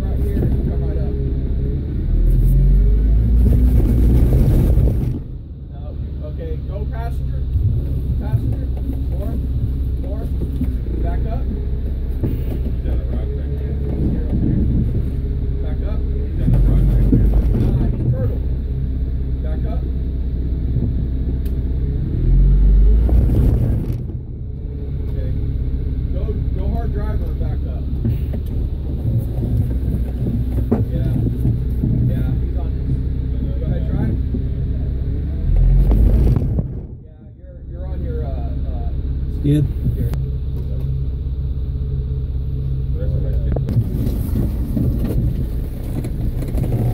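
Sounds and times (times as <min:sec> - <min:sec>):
off-road vehicle engine running: 0:00.0 - 0:46.9.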